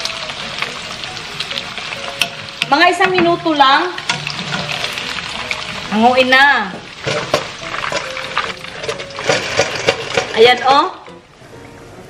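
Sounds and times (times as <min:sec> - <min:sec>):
meat sizzling in hot oil: 0:00.0 - 0:11.4
background music: 0:00.0 - 0:12.0.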